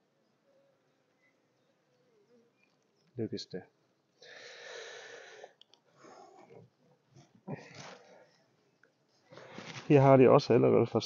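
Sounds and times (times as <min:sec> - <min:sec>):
person breathing softly: 0:04.2 - 0:06.6.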